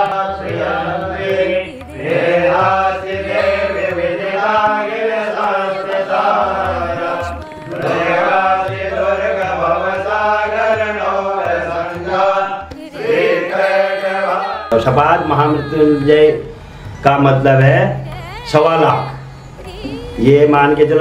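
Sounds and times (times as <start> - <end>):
priests chanting: 0.0 - 21.0.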